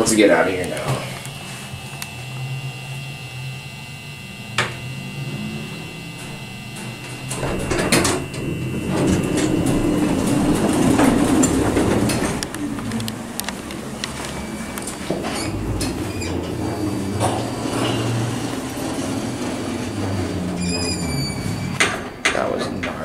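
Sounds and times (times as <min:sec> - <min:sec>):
elevator doors rumbling: 0:03.9 - 0:23.0
doors closing with a knock: 0:06.2 - 0:23.0.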